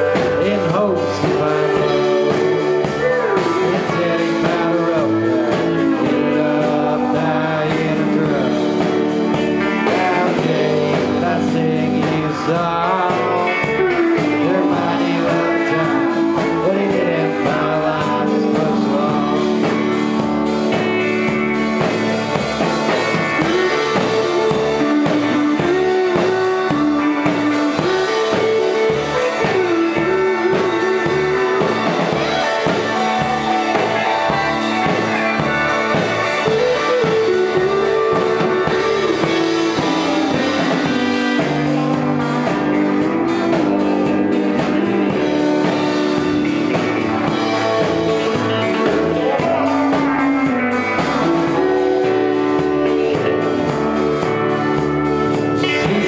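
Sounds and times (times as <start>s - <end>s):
drum kit: 0.0s - 56.0s
guitars: 0.0s - 56.0s
keyboard: 0.0s - 56.0s.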